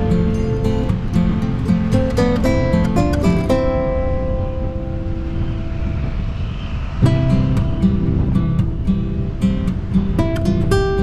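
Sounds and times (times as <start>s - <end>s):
acoustic guitar ringing: 0.0s - 11.0s.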